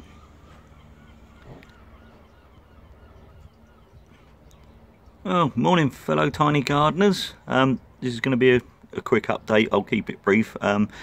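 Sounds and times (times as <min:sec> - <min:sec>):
distant bird calls: 0:00.0 - 0:11.0
low steady hum: 0:00.0 - 0:11.0.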